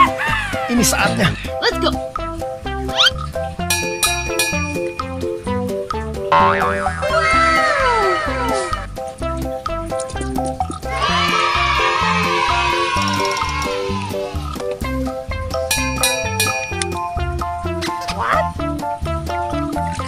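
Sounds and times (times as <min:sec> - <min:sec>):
music with plucked notes and beat: 0:00.0 - 0:10.9, 0:14.5 - 0:20.0.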